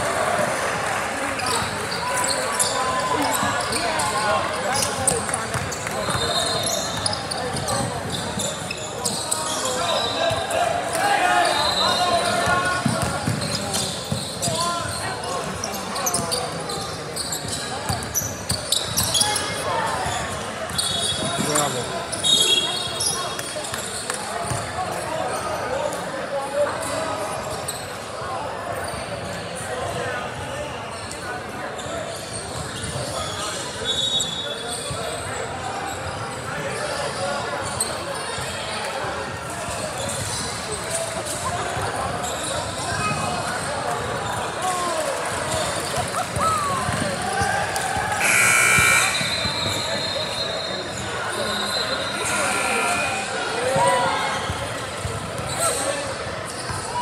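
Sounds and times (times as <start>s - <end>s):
spectator chatter echoing: 0.0s - 27.4s, 35.2s - 57.0s
loud shrill tone: 48.2s - 50.7s, 51.5s - 53.5s.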